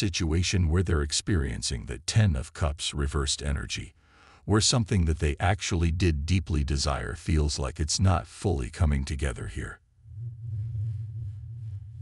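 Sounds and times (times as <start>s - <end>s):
steady low hum: 8.6s - 12.0s.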